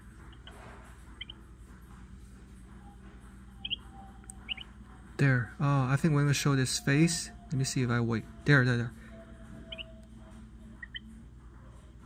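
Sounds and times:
steady low hum: 0:00.0 - 0:12.0
small bird chirping: 0:00.2 - 0:01.5, 0:03.5 - 0:04.8, 0:09.6 - 0:10.0, 0:10.7 - 0:11.2.

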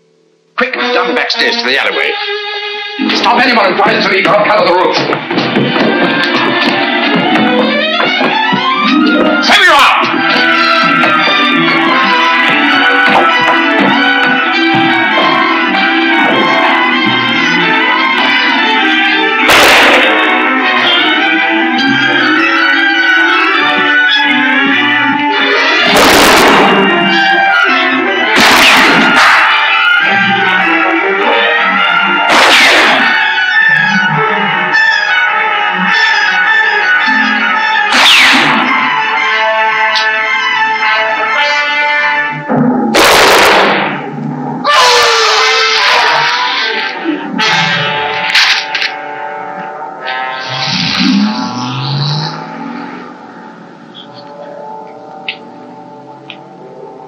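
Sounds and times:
tense orchestral music: 0:00.6 - 0:57.0
gunshots: 0:19.5 - 0:20.5, 0:25.8 - 0:27.3, 0:28.3 - 0:29.8, 0:32.2 - 0:33.5, 0:42.9 - 0:44.2.

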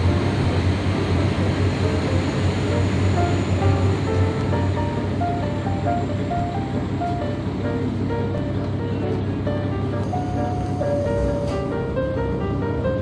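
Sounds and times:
background music: 0:00.0 - 0:13.0
passing train rumble: 0:00.0 - 0:13.0.

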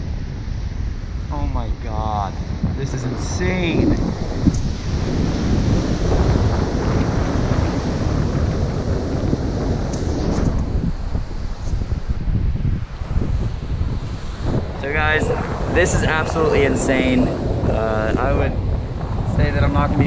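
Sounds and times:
wind buffeting microphone: 0:00.0 - 0:20.0
ocean surf: 0:03.2 - 0:20.0.

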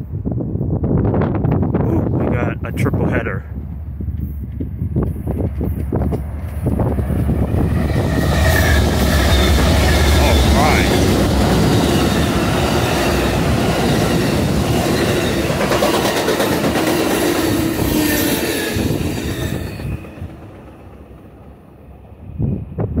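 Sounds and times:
train cars rolling on rails: 0:03.4 - 0:23.0.

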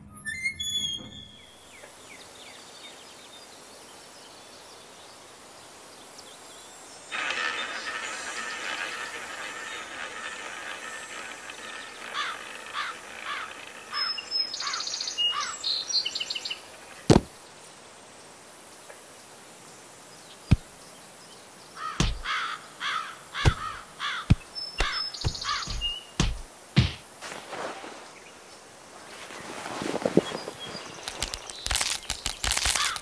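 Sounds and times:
birds chirping: 0:11.0 - 0:17.4, 0:19.7 - 0:27.2
faint steady hiss: 0:15.8 - 0:21.8.

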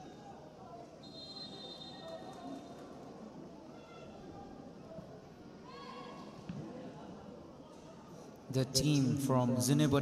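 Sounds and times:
faint crowd murmur: 0:00.0 - 0:10.0.

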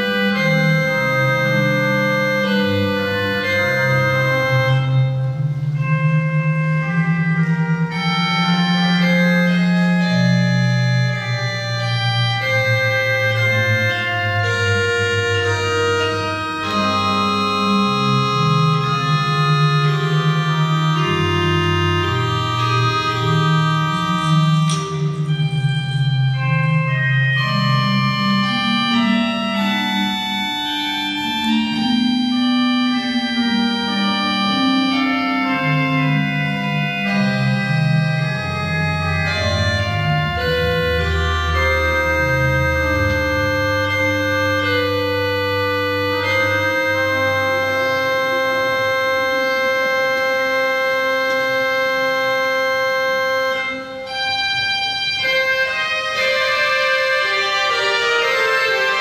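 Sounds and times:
church organ chords: 0:00.0 - 0:59.0.

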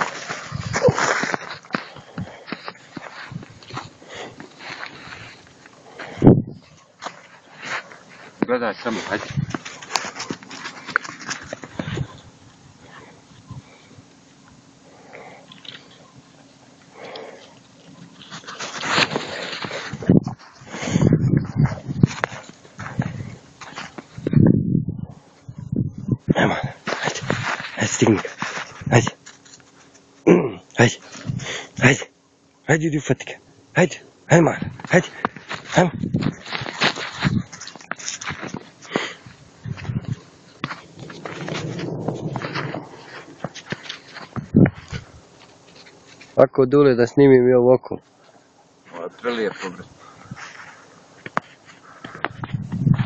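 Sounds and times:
footsteps crunching in snow: 0:00.0 - 0:12.2, 0:18.0 - 0:24.2, 0:26.7 - 0:30.1, 0:34.8 - 0:46.4, 0:50.3 - 0:53.0.

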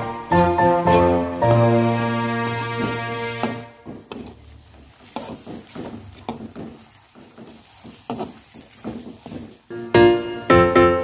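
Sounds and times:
background music: 0:00.0 - 0:03.8, 0:09.8 - 0:11.0
metal spoon stirring in a wok: 0:00.8 - 0:09.8.

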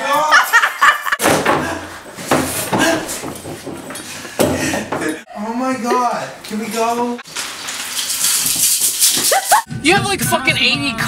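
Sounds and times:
hissing rattling shaken object: 0:07.8 - 0:09.7.

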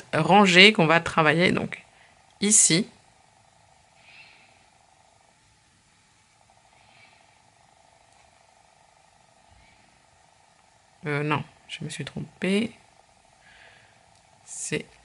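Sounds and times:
low steady hum: 0:00.0 - 0:15.0.

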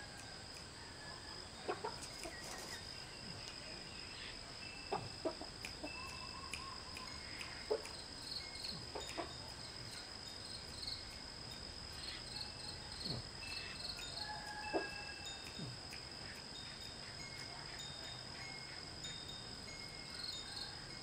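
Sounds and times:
crickets trilling: 0:00.0 - 0:21.0.

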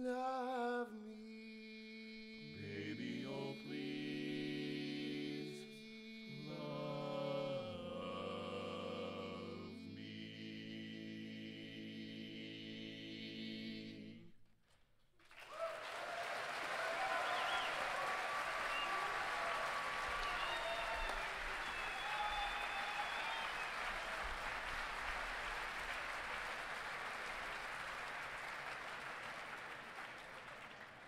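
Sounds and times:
audience applauding: 0:15.2 - 0:31.0.

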